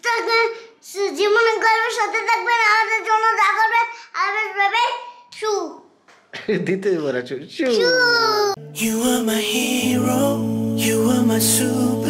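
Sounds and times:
boy's high-pitched whining voice: 7.7 - 8.6.

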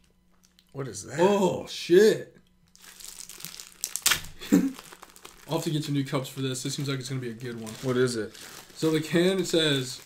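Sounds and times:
packaging crinkling and rustling: 2.7 - 10.0.

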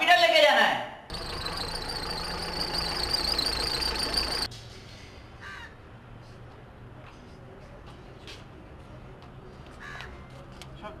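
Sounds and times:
low outdoor background: 0.0 - 11.0
crows cawing: 5.4 - 5.8, 9.8 - 10.1.

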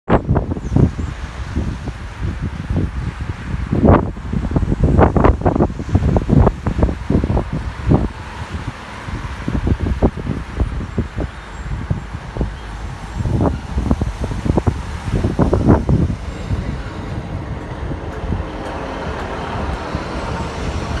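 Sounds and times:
wind buffeting microphone: 0.1 - 21.0.

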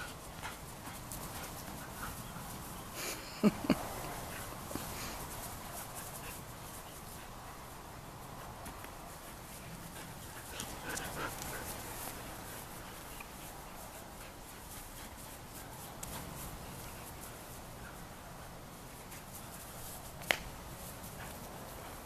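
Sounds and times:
outdoor background noise: 0.0 - 22.0
puppies making dog noises: 9.3 - 15.0.

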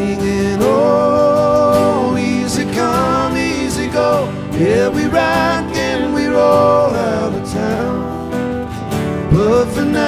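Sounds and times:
live country band playing: 0.0 - 10.0
man singing lead vocal: 0.0 - 10.0.

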